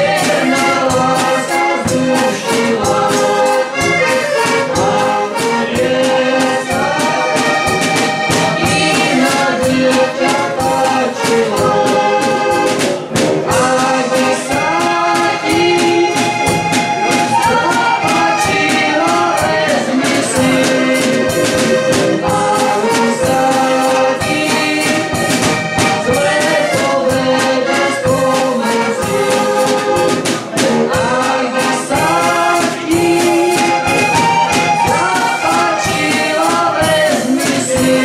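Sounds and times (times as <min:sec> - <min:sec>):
button accordion playing lively tune: 0:00.0 - 0:38.0
drum kit steady beat: 0:00.0 - 0:38.0.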